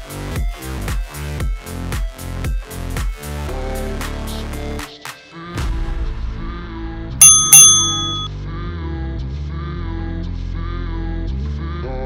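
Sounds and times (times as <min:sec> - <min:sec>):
bright bell dings: 0:07.2 - 0:08.3.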